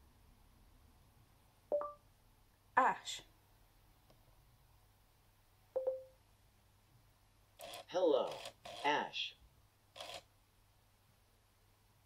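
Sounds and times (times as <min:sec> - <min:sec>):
short electronic beep: 0:05.8 - 0:06.2.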